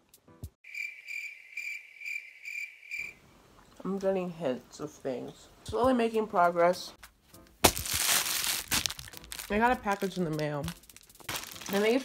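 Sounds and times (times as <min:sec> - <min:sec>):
crickets chirping: 0:00.6 - 0:03.2.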